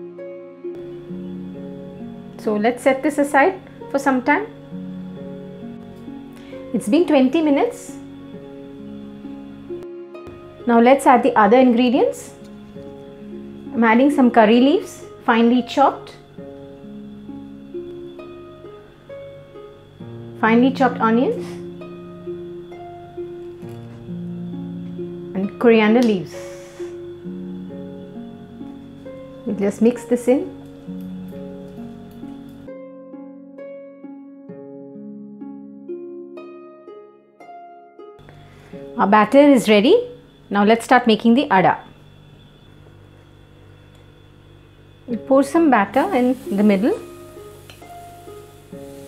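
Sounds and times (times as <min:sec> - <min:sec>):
faint background hum and hiss: 0:00.7 - 0:32.8, 0:38.2 - 0:49.0
plucked string slow melody: 0:08.0 - 0:26.2, 0:26.9 - 0:39.0.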